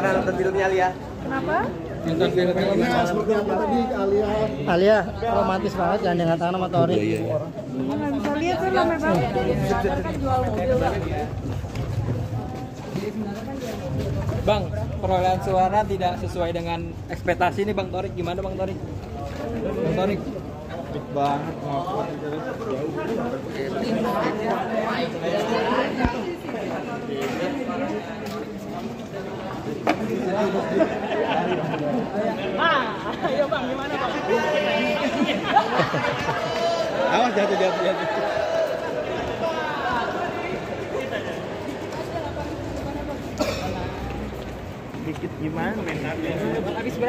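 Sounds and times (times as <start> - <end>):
indistinct crowd voices: 0.0 - 47.0.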